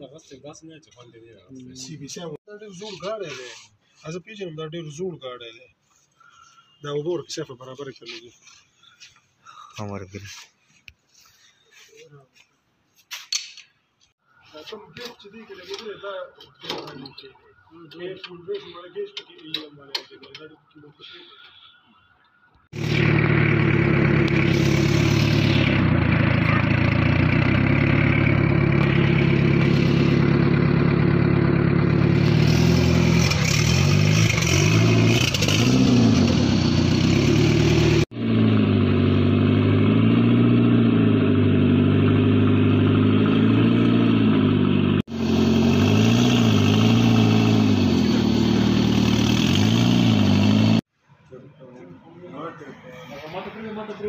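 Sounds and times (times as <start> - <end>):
car engine idling and revving: 22.7 - 50.9.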